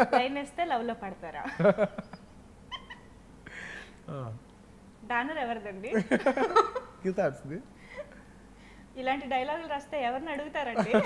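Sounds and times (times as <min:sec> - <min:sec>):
breathy exhale: 0:03.5 - 0:04.0.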